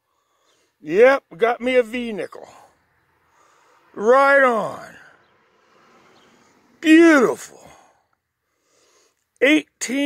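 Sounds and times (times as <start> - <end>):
faint background noise: 0.0 - 10.0
man speaking: 0.8 - 2.7, 3.9 - 5.1, 6.8 - 7.8, 9.4 - 10.0.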